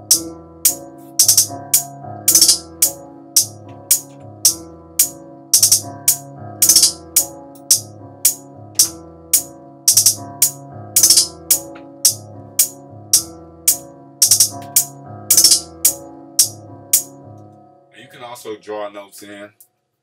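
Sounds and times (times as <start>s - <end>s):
trap hi-hat loop: 0.1s - 17.1s.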